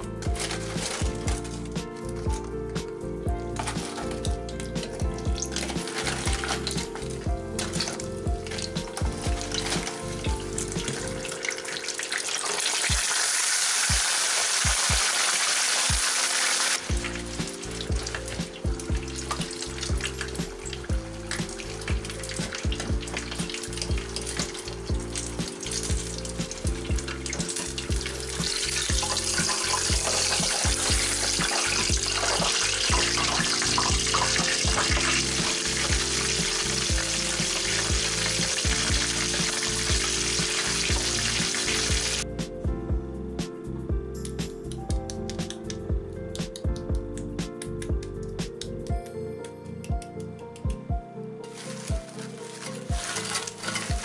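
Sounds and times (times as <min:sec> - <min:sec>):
chicken deep-frying in oil: 0:00.0 - 0:02.3, 0:04.9 - 0:42.2, 0:51.5 - 0:54.0
background music with bass line: 0:00.0 - 0:11.4, 0:16.9 - 0:51.2.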